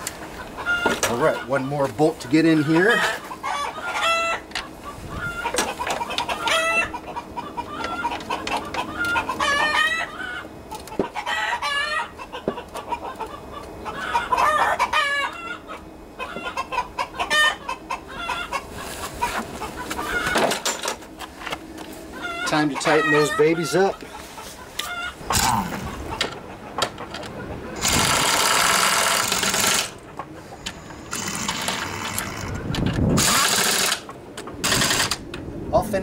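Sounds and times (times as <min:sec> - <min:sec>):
birds calling: 0:00.0 - 0:34.6.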